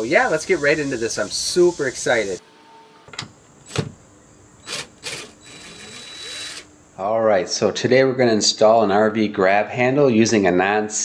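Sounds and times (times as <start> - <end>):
cordless drill motor whine: 4.6 - 6.7
drill trigger blips: 4.6 - 6.7.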